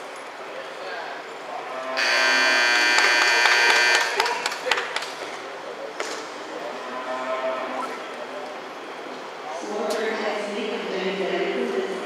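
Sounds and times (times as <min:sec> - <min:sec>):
arena buzzer blare: 0:02.0 - 0:04.3.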